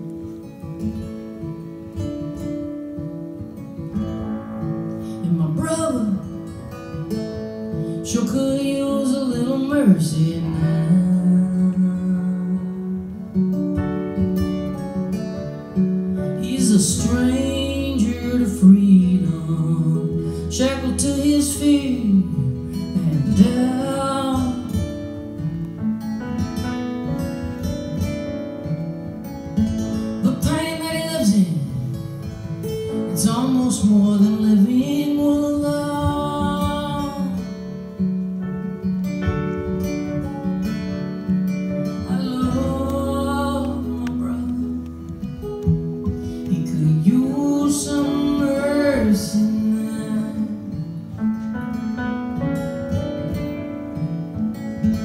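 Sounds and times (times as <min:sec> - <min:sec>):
acoustic guitars playing: 0:00.0 - 0:55.0
woman singing: 0:05.2 - 0:06.4, 0:08.0 - 0:13.1, 0:16.4 - 0:24.9, 0:30.2 - 0:31.8, 0:33.2 - 0:37.4, 0:42.0 - 0:45.2, 0:46.5 - 0:50.9.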